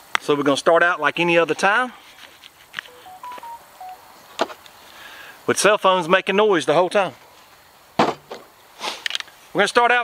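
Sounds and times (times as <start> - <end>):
electronic beeps: 2.9 - 4.0.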